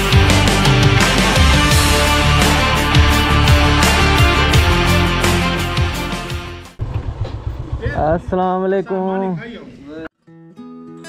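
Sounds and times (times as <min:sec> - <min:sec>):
rock music: 0:00.0 - 0:06.8
motorcycle engine idling: 0:06.8 - 0:08.4
man speaking: 0:07.8 - 0:10.1.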